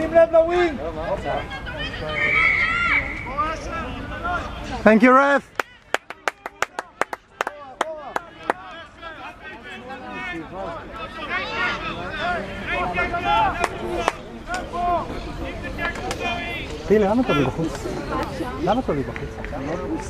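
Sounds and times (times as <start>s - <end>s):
voices calling out: 0.0s - 20.0s
hand claps: 5.6s - 8.6s.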